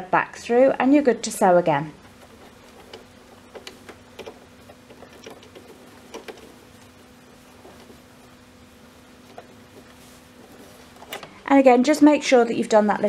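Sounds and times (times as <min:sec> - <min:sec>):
steady low hum: 0:00.0 - 0:13.0
fabric rustling: 0:02.0 - 0:11.5.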